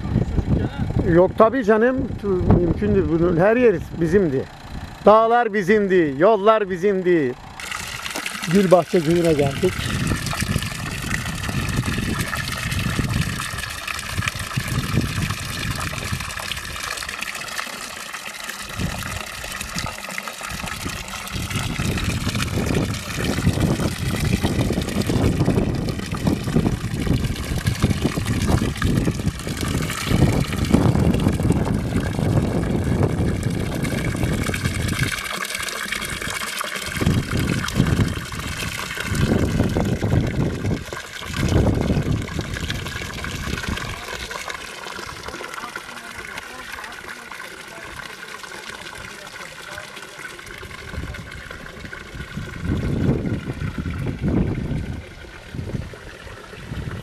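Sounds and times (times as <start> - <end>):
water pouring into stone basin: 7.6 - 57.0.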